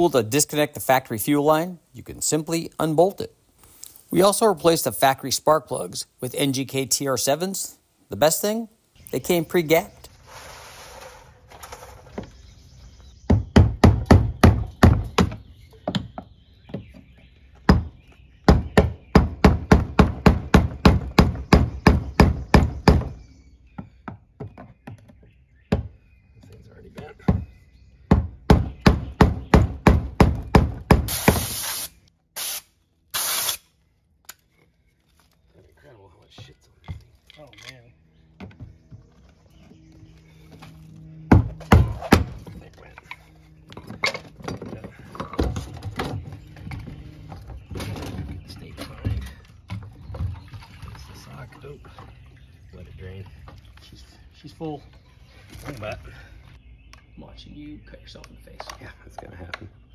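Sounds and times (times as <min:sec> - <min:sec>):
hiss bursts: 0:31.1 - 0:33.6
knocks and handling noise: 0:36.3 - 0:50.4.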